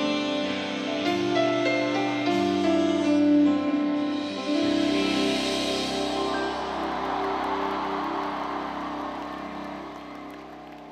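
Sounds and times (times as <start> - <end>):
live band music: 0.0 - 10.8
crowd noise: 4.5 - 10.9.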